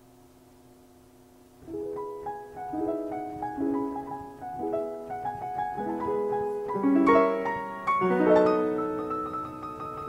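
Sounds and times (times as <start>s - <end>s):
faint steady hum: 0.0s - 10.0s
piano chord ringing: 1.6s - 10.0s.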